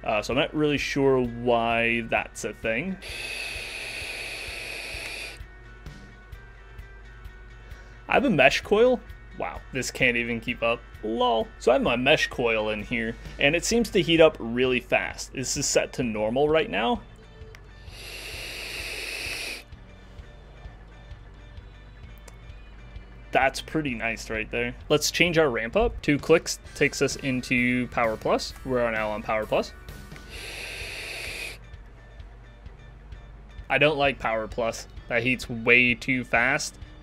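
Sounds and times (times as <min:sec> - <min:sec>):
faint background music: 0:00.0 - 0:37.0
faint airflow whistle: 0:02.9 - 0:06.9, 0:17.2 - 0:23.0, 0:28.9 - 0:32.2
vape draw hiss: 0:03.0 - 0:06.0, 0:17.8 - 0:19.8, 0:30.0 - 0:31.7.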